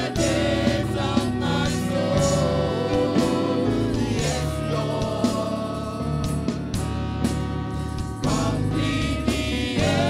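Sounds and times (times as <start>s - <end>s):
amplified accompaniment with beat: 0.0s - 10.0s
group singing gospel: 0.0s - 10.0s.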